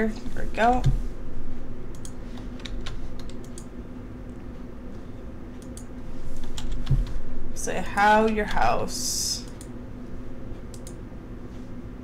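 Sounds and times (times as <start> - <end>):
low steady hum: 0.0 - 12.0
mouse clicks: 10.7 - 11.0.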